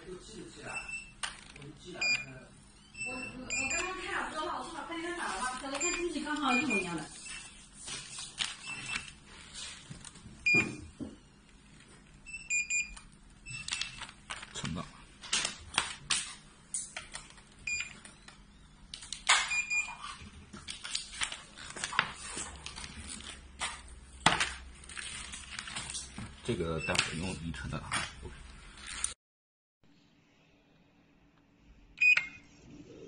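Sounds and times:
packaging bags crinkling: 0:13.8 - 0:18.1, 0:20.0 - 0:27.3.

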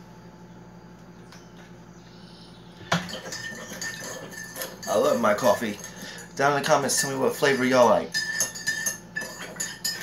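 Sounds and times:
low steady hum: 0:00.0 - 0:10.0
mug and spoon clinking: 0:02.9 - 0:10.0.

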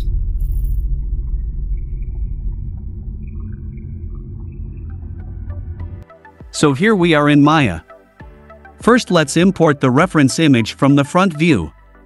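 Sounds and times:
deep low drone: 0:00.0 - 0:06.2.

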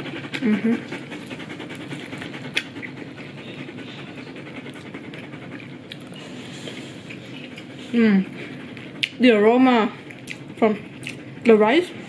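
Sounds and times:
dog panting: 0:00.0 - 0:12.0.

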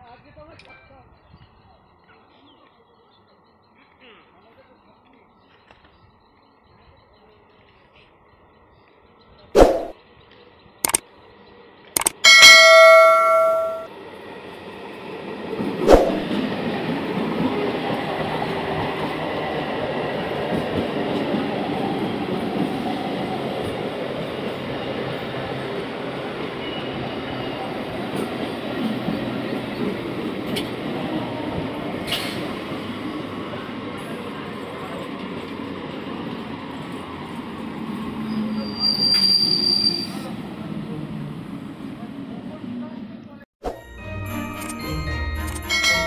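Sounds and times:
train wheels rumbling on rails: 0:14.2 - 0:42.7
high-pitched train squeal: 0:38.2 - 0:40.3.

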